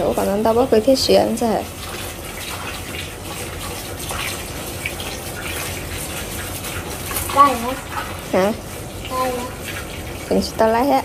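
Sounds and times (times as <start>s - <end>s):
water from hose pouring into pot: 0.0s - 11.0s.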